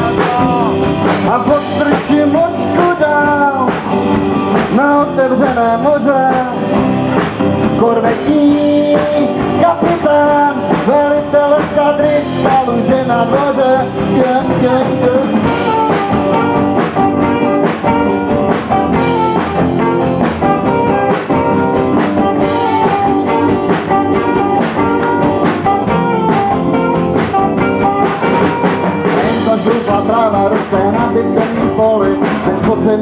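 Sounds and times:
bass guitar: 0.0 - 33.0
drum kit beat: 0.0 - 33.0
electric guitars: 0.0 - 33.0
rock band playing instrumental: 0.0 - 33.0
saxophone: 8.1 - 30.3.

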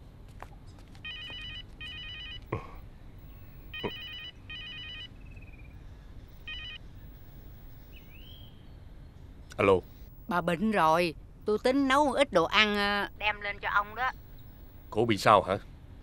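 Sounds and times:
mobile phone ringing: 1.0 - 2.5, 3.2 - 5.2, 6.4 - 7.9.

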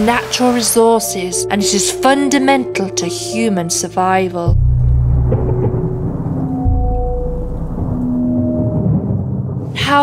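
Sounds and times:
thunder rolling: 4.5 - 10.0.

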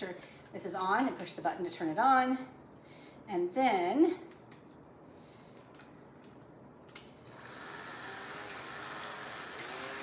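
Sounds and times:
hand mixer motor running: 7.3 - 10.0.

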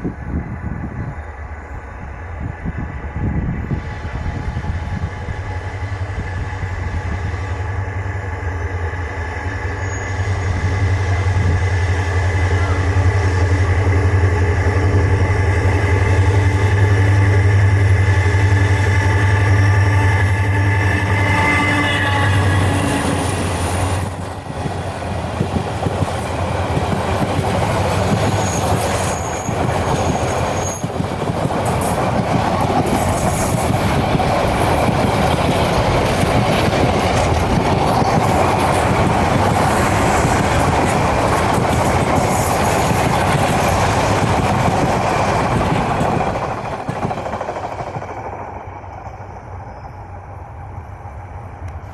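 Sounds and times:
train wheels rumbling on rails: 0.0 - 51.9
locomotive engine running: 4.2 - 49.4
high wheel squeal: 8.2 - 10.6, 19.0 - 24.0, 28.2 - 31.1.

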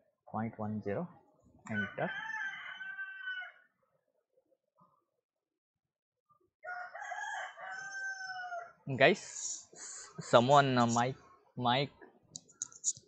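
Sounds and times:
rooster crowing: 1.7 - 3.8, 6.6 - 8.9.

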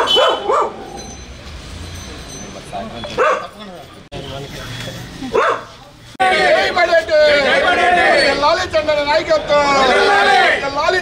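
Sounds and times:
dog barking: 0.0 - 0.9, 3.2 - 3.6, 5.3 - 5.8.

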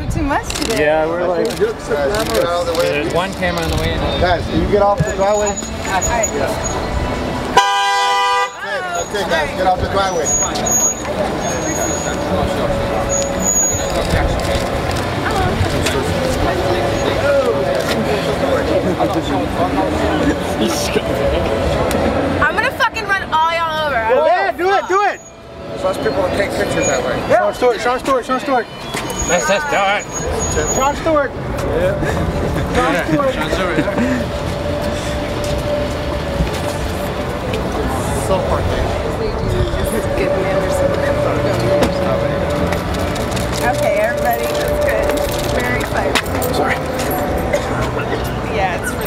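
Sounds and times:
car engine rumbling: 0.0 - 49.0
crowd voices: 0.0 - 49.0.

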